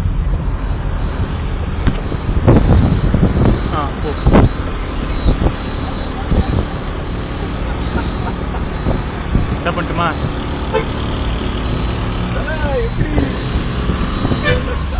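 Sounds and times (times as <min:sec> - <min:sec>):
car engine and road rumble: 0:00.0 - 0:14.9
high-pitched whine: 0:00.0 - 0:14.9
voices: 0:00.0 - 0:14.9.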